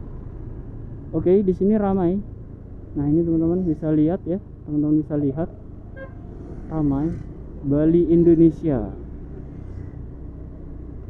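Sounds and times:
low street rumble: 0.0 - 11.0.

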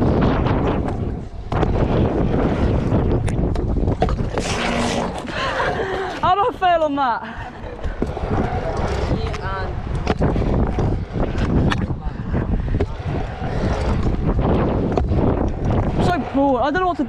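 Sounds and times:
scooter wheels rolling on concrete: 0.0 - 17.0
wind buffeting microphone: 0.0 - 17.0.

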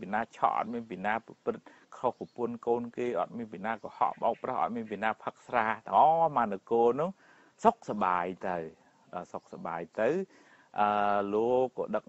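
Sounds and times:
monk preaching: 0.0 - 12.0.

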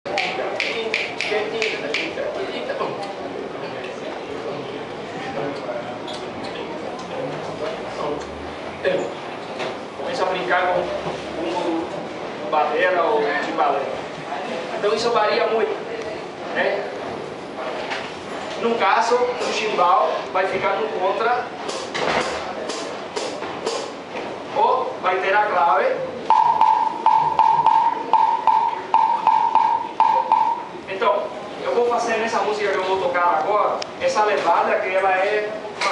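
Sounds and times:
people talking: 0.1 - 9.1, 10.0 - 18.0
hi-hat struck with stick: 21.7 - 24.0, 26.3 - 30.7.

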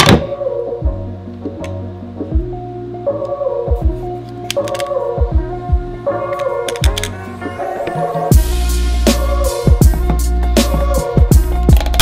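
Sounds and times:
instrumental music with drum beat: 3.6 - 12.0.

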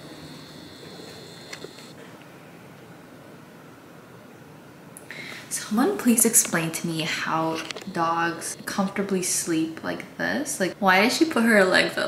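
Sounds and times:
faint high whine: 0.0 - 10.8.

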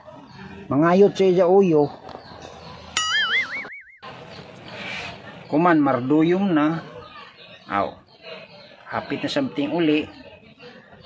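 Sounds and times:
faint background noise: 0.0 - 11.0
cartoon boing sound effect: 3.0 - 4.1.

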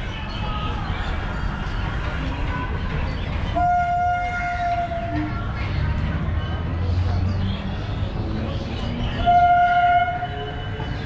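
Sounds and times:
low outdoor background noise: 0.0 - 11.0.

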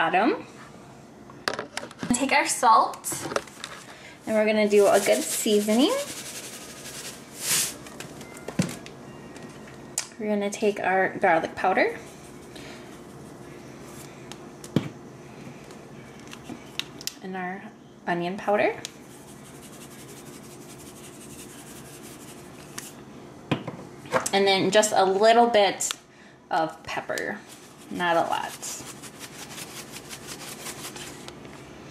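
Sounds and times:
spice shaker ticking and rustling: 4.6 - 8.0, 19.0 - 23.0, 27.4 - 31.2
salt pouring hiss: 4.7 - 7.8.

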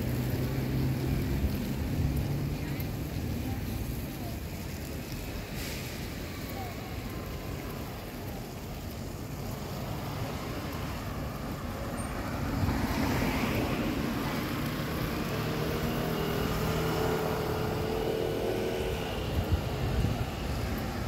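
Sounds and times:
car driving slowly: 0.0 - 21.0
traffic noise: 0.0 - 21.0.

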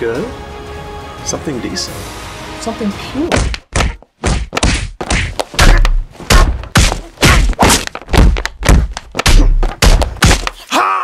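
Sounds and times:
stick thudding on pinata: 3.3 - 10.6.

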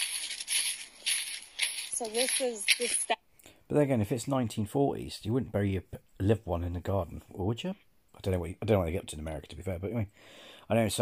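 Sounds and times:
footsteps crunching dry leaves: 0.0 - 3.2.

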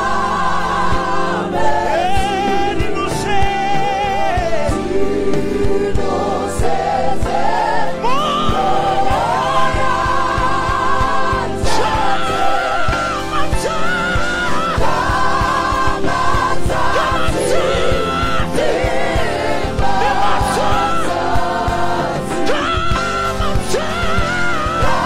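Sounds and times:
band with drums and bass: 0.0 - 25.0
choir singing gospel: 0.0 - 25.0.

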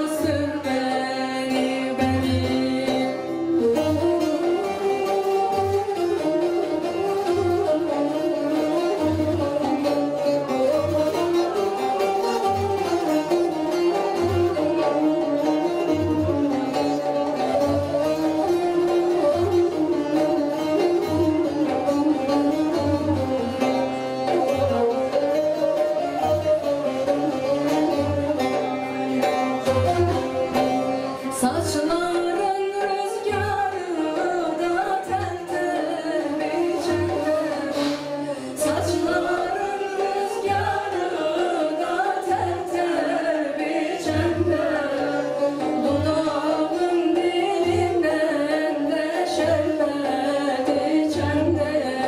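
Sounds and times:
bowed strings: 0.0 - 52.0
long-necked lute melody: 0.0 - 52.0.

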